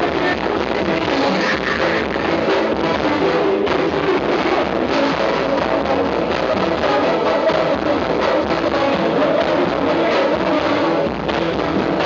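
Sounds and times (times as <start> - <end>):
band playing live music: 0.0 - 12.0.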